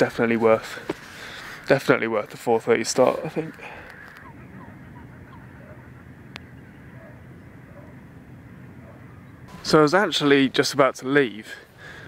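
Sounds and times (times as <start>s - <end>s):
distant bird calling: 0.0s - 10.6s, 11.6s - 12.0s
low outdoor rumble: 2.6s - 10.7s.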